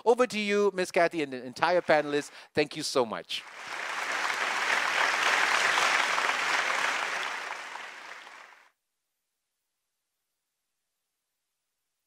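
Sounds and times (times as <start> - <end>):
applause: 1.5 - 2.5, 3.4 - 8.7.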